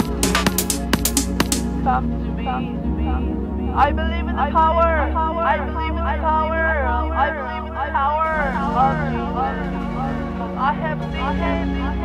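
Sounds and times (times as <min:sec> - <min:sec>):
music with held low notes: 0:00.0 - 0:12.0.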